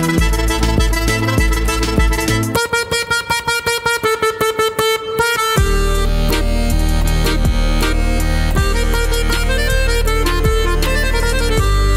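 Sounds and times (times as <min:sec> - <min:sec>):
button accordion staccato note: 0:00.0 - 0:02.7, 0:05.6 - 0:11.9.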